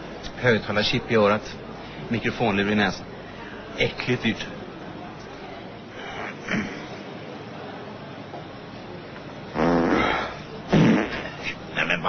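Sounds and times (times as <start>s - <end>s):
man farting loudly: 9.5s - 11.6s.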